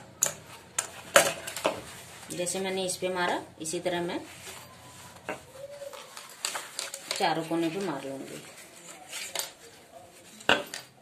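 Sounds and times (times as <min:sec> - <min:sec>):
soft rustles of fabric purse: 0:00.4 - 0:10.5.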